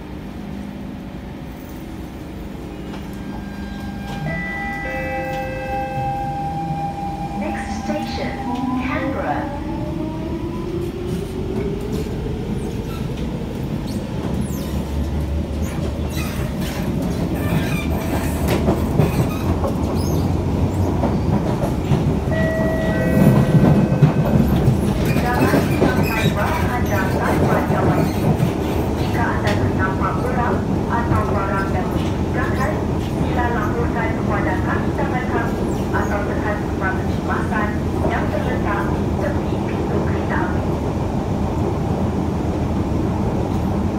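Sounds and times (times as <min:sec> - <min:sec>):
wheel-on-rail rumble and clatter: 0:10.8 - 0:43.9.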